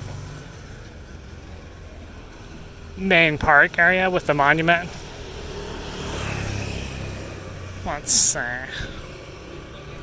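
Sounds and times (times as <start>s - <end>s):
motorbike engine passing by: 5.0s - 7.8s.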